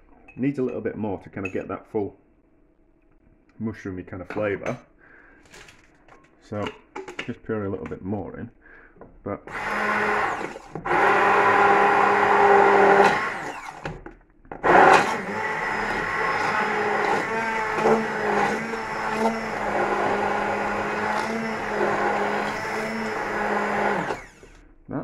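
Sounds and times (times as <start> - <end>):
stick blender motor humming: 9.5 - 14.0, 14.6 - 24.6.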